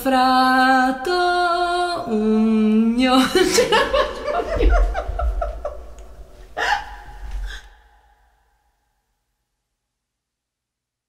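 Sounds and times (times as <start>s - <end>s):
low hum: 2.1s - 8.3s.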